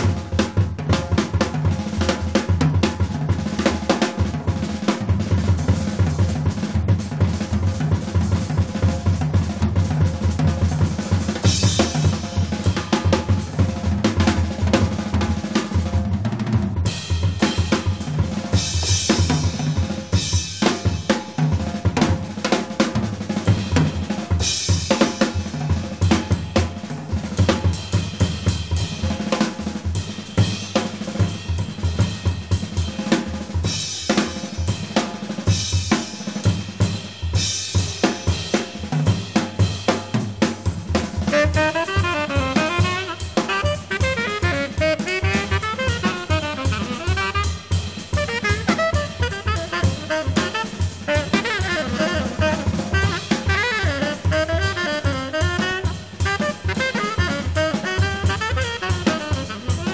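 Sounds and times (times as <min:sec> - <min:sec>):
jazz drum kit playing: 0:00.0 - 0:59.9.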